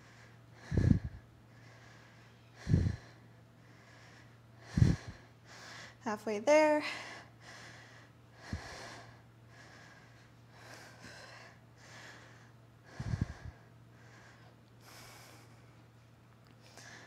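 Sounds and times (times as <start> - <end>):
woman breathing hard: 0.0 - 6.0, 6.8 - 15.9, 16.6 - 17.0.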